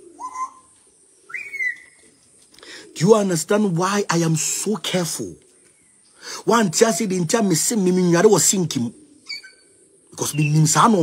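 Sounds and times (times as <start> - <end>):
whistled calls: 0.0 - 2.2, 8.2 - 11.0.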